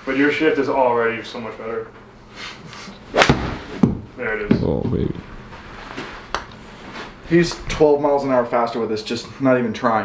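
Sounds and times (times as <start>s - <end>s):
golf club striking ball: 3.2s - 4.0s.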